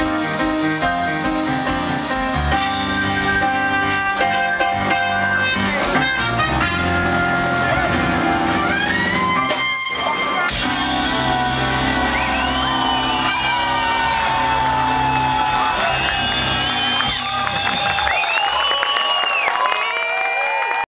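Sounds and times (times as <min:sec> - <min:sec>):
bass line: 0:00.0 - 0:18.2
keyboards: 0:00.0 - 0:18.6.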